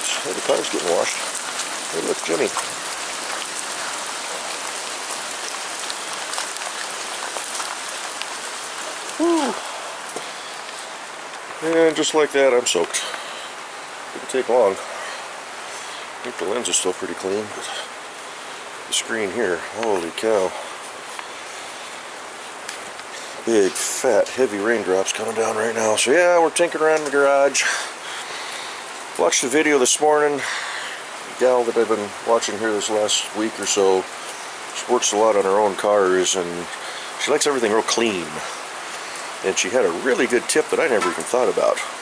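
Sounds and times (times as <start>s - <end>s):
sharp raindrop impacts: 0.0s - 25.2s
heavy rain downpour: 0.0s - 42.0s.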